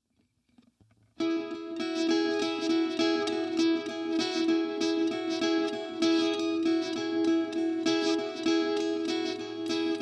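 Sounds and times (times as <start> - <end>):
guitar picked notes: 1.2 - 10.0.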